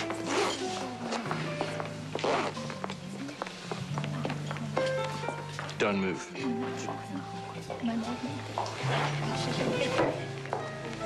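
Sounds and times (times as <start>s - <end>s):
zipper pulled open: 0.0s - 1.3s, 2.1s - 2.8s, 8.8s - 9.2s.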